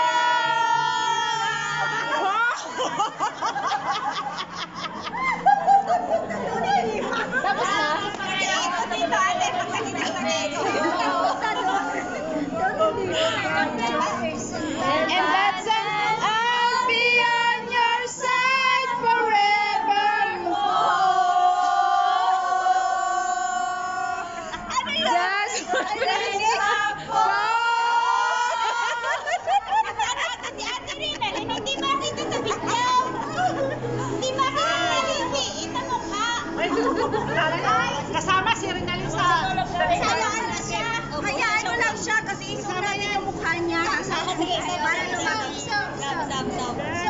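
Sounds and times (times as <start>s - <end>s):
women singing together: 0.0s - 45.5s
background music: 0.0s - 47.0s
women laughing: 0.1s - 13.8s, 23.0s - 38.0s
women singing along: 13.5s - 30.4s.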